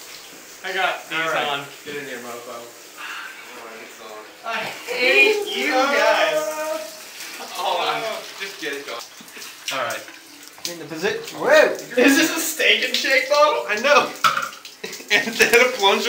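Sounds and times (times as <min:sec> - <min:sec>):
shower running on tiles: 0:00.0 - 0:16.0
young men's voices: 0:03.4 - 0:09.0, 0:09.6 - 0:16.0
men laughing: 0:14.8 - 0:15.6.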